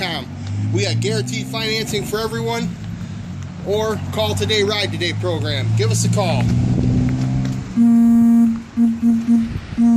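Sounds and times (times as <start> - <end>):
loud single-pitched tone toots: 7.8 - 9.9.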